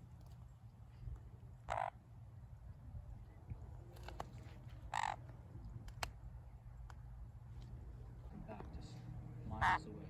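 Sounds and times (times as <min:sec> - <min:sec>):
parrot squawk: 0:04.9 - 0:05.2, 0:09.6 - 0:09.9
faint clicks: 0:05.8 - 0:06.2.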